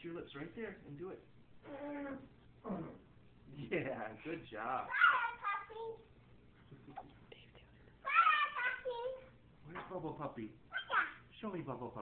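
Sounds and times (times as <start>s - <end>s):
child squealing: 10.8s - 11.2s.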